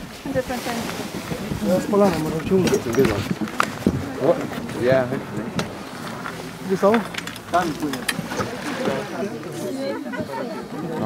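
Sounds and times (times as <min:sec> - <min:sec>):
babble of overlapping voices: 0:00.0 - 0:11.0.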